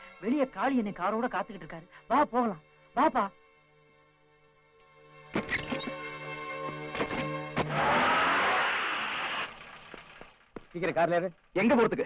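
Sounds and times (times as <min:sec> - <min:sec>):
car driving on dirt: 0:07.6 - 0:11.1.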